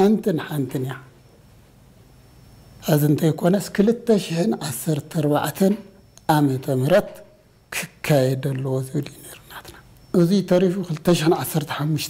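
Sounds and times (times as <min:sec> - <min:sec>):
man talking: 0:00.0 - 0:01.1, 0:02.8 - 0:12.0.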